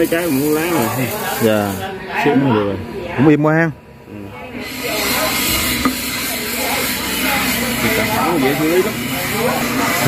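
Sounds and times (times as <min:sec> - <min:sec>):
loud steady hiss: 0:00.0 - 0:01.8, 0:04.6 - 0:10.0
faint voices: 0:00.0 - 0:10.0.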